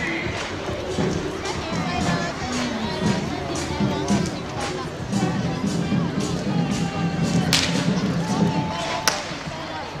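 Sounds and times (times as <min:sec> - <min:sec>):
crowd voices: 0:00.0 - 0:10.0
music: 0:00.0 - 0:10.0.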